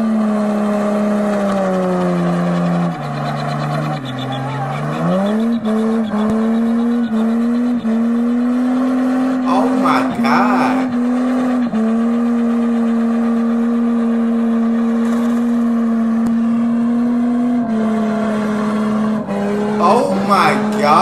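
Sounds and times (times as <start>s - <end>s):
car engine at high revs: 0.0s - 9.5s, 10.9s - 19.8s.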